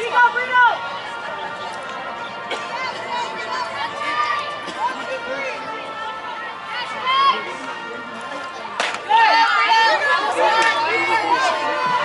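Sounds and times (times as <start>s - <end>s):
players chattering and calling: 0.0s - 12.0s.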